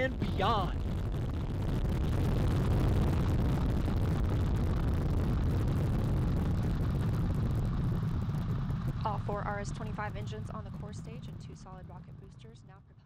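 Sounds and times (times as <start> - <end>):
rocket deep rumble: 0.0 - 13.0.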